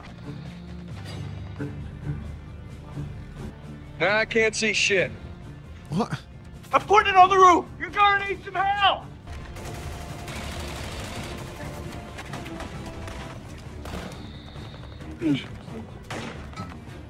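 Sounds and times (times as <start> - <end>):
film music score: 0.0 - 17.0.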